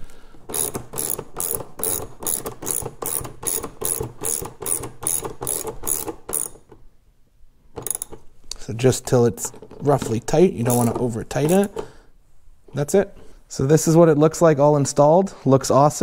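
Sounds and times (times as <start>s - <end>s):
hand ratchet clicking: 0.5s - 6.8s, 7.8s - 8.2s, 10.7s - 11.8s.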